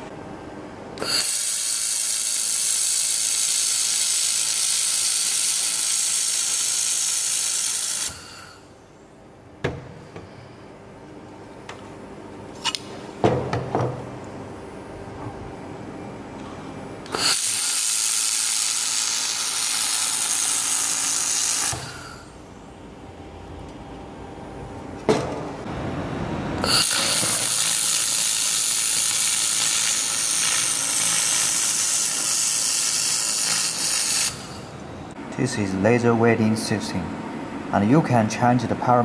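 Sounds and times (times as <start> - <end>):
laser welder hissing: 1.0 - 8.6, 17.1 - 22.4, 26.6 - 34.8.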